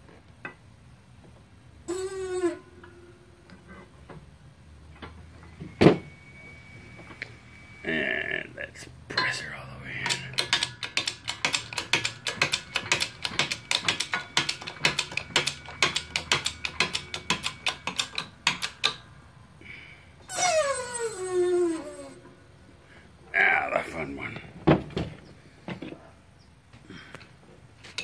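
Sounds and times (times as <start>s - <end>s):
metallic ratchet clicking: 10.0s - 19.1s
squeal falling in pitch: 20.3s - 22.2s.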